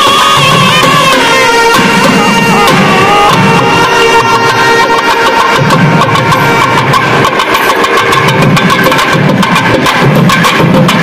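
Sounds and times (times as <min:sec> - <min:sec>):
wind instruments holding a note: 0:00.0 - 0:07.5
rapid drum strokes: 0:00.0 - 0:11.0.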